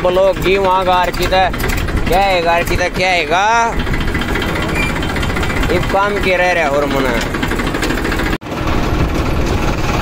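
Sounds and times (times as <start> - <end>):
man speaking: 0.0 - 3.8, 5.5 - 7.4
farm machinery engine running: 0.0 - 10.0.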